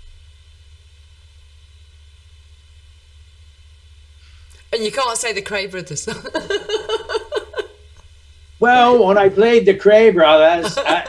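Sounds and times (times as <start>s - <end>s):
faint hiss: 0.0s - 11.0s
steady low hum: 0.0s - 11.0s.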